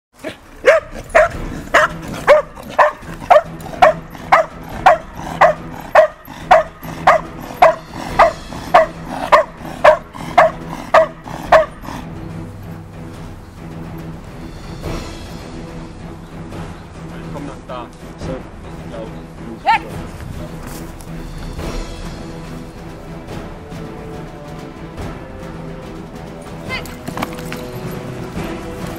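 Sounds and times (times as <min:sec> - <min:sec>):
dog barking: 0:00.2 - 0:12.1
background music: 0:00.2 - 0:28.9.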